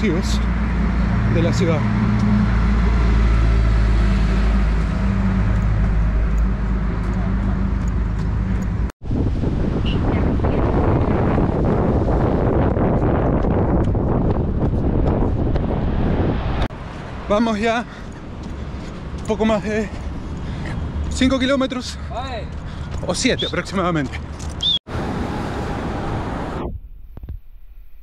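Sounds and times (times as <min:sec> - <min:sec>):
wind buffeting microphone: 0:07.9 - 0:17.2.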